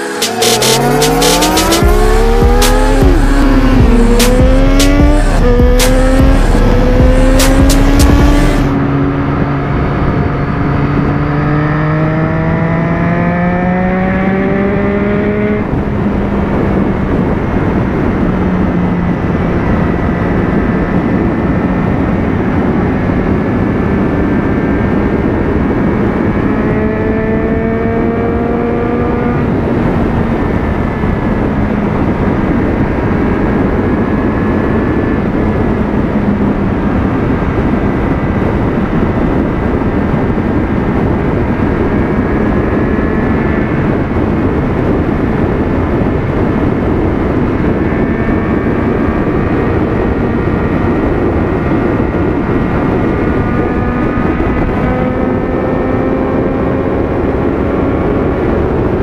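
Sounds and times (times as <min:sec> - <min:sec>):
intro music with a beat: 0:00.0 - 0:08.8
engine revving: 0:00.0 - 0:59.0
gear change: 0:00.0 - 0:59.0
motorcycle engine accelerating: 0:00.0 - 0:59.0
wind and road rush: 0:00.0 - 0:59.0.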